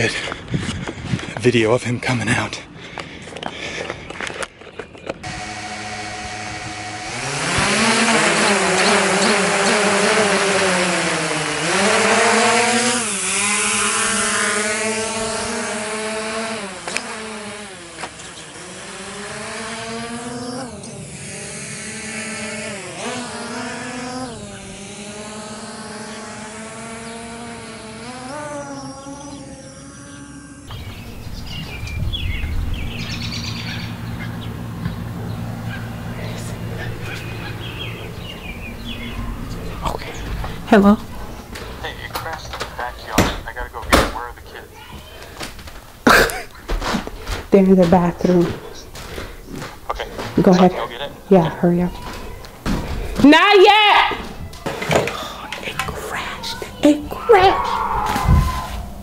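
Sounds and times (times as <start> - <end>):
drone propellers buzzing: 2.6 - 59.0.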